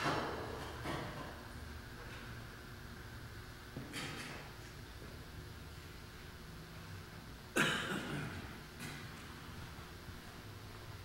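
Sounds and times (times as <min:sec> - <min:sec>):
short cough: 0:07.6 - 0:08.6.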